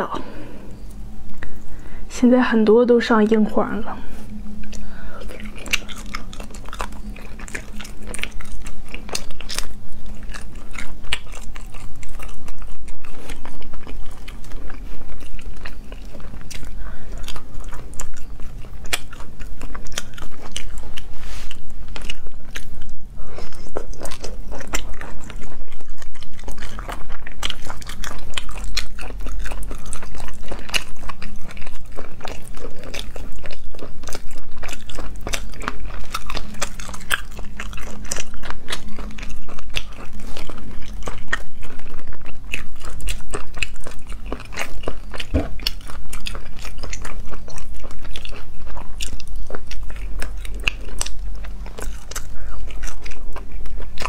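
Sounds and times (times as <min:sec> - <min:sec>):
chewing with crunches: 0:00.0 - 0:54.0
faint low hum: 0:00.0 - 0:54.0.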